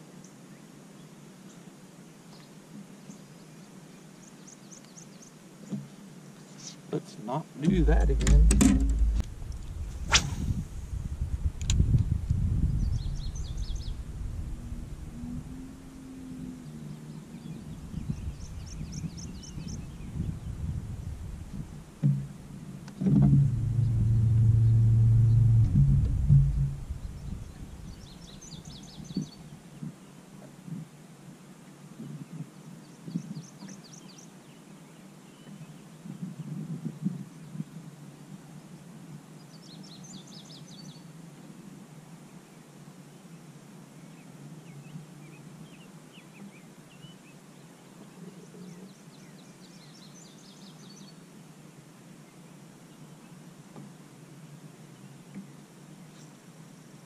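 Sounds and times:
water and handling rumble: 0:07.6 - 0:16.9, 0:20.9 - 0:28.5
electric trolling motor humming: 0:23.2 - 0:28.0.

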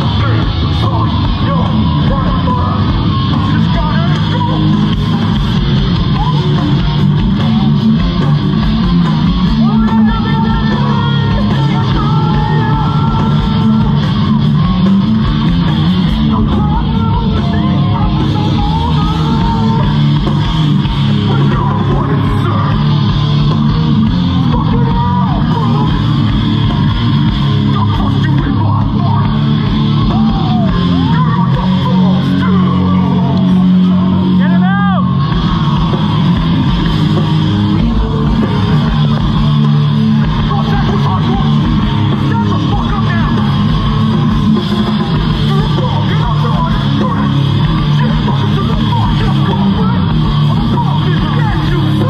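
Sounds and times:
drums: 0:00.0 - 0:52.0
electric guitars: 0:00.0 - 0:52.0.

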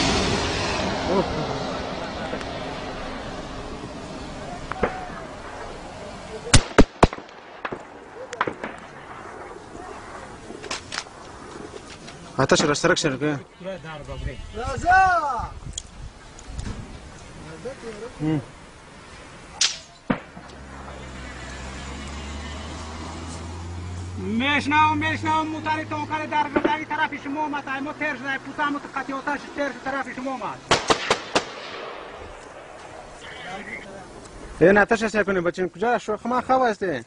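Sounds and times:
low engine drone: 0:00.0 - 0:06.5
falling whizz: 0:00.0 - 0:12.3
faint gunshots: 0:04.7 - 0:05.7, 0:06.4 - 0:11.5, 0:19.6 - 0:21.0, 0:30.7 - 0:33.4
loud gunshots: 0:06.5 - 0:10.2, 0:30.7 - 0:32.8.

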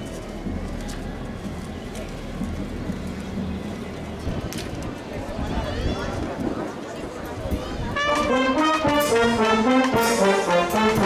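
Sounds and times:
wind rumbling on microphone: 0:00.0 - 0:08.2
outdoor crowd noise: 0:00.0 - 0:11.0.

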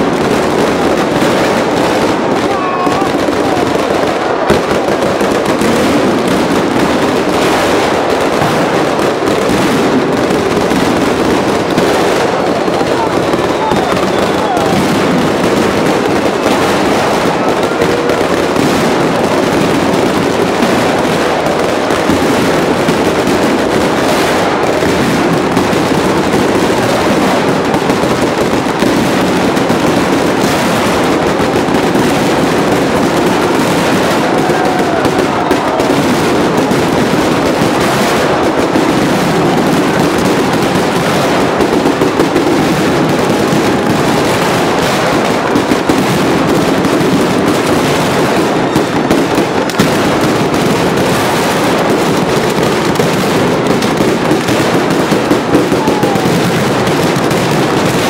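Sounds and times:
firecrackers crackling: 0:00.0 - 0:58.0.

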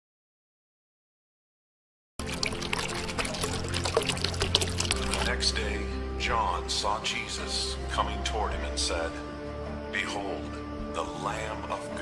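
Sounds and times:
water trickling and splashing: 0:02.2 - 0:05.4
music with low notes: 0:02.2 - 0:12.0.

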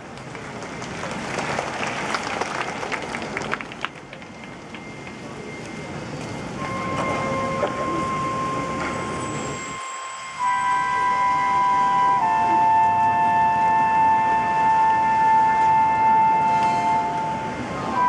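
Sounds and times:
steady high held note: 0:04.8 - 0:18.0
wind band playing softly: 0:06.6 - 0:18.0.

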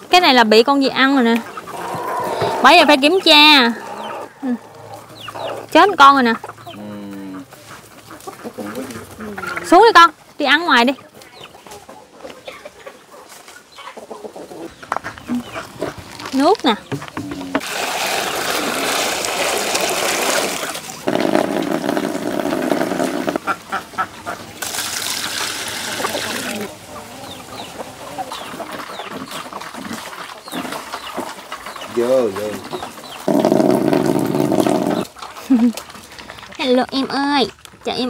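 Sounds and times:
fowl calling: 0:01.5 - 0:09.8
water poured into plastic basin: 0:17.6 - 0:23.4, 0:24.6 - 0:26.7.

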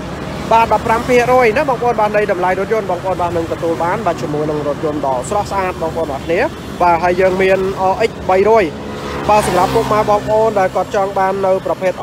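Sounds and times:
person talking: 0:00.4 - 0:12.0.

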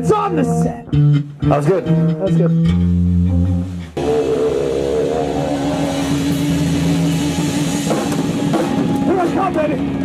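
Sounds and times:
bass guitar: 0:00.0 - 0:10.0
distorted electric guitar: 0:00.6 - 0:10.0.

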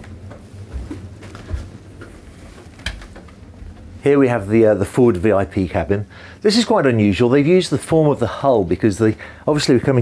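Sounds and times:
footsteps on wooden stairs: 0:00.0 - 0:03.9
low steady hum: 0:00.0 - 0:10.0.

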